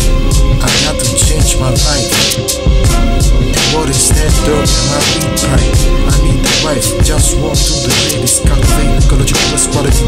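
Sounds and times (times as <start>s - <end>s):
man rapping over a beat: 0.0s - 10.0s.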